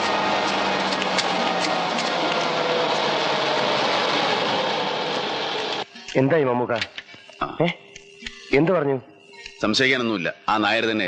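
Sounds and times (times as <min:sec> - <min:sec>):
train passing rumble and rattle: 0:00.0 - 0:05.9.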